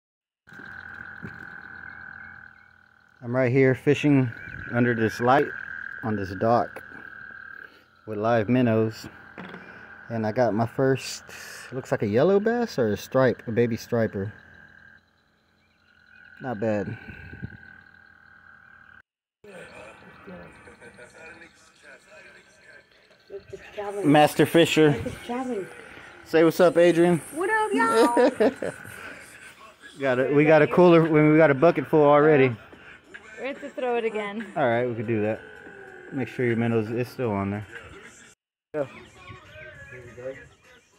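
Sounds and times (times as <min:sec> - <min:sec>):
faint outdoor background: 0:00.5 - 0:40.9
steady high-pitched tone: 0:19.5 - 0:29.5.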